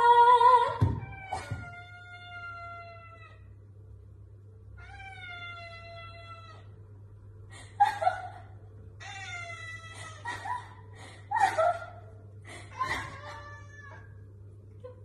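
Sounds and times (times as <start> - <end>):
cat meowing: 1.0 - 3.4, 4.8 - 6.7, 13.2 - 14.1.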